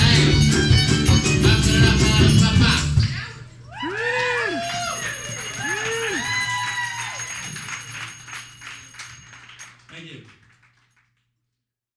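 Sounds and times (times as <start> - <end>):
audience cheering: 3.7 - 7.7
audience clapping: 4.0 - 11.6.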